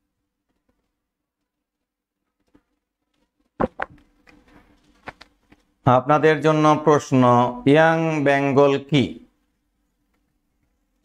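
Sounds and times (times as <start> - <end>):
faint steady hum: 0.0 - 11.0
man speaking: 5.9 - 9.3.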